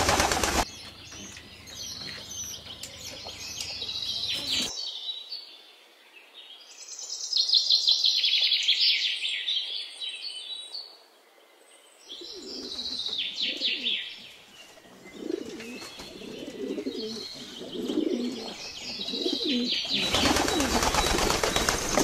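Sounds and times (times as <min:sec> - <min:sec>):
pigeons cooing: 0:00.0 - 0:00.6, 0:02.8 - 0:04.7, 0:12.2 - 0:14.0, 0:14.8 - 0:22.0
high bird chirping: 0:00.6 - 0:04.9, 0:12.1 - 0:22.0.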